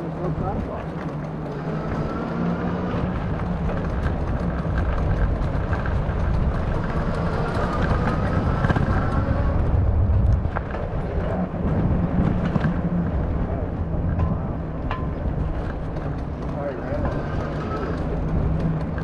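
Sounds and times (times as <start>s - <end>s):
road noise rumble: 0.0s - 19.0s
wind buffeting microphone: 0.0s - 19.0s.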